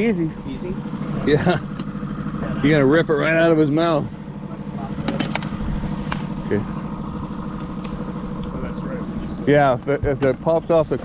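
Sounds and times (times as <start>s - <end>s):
outboard motor humming: 0.0s - 11.0s.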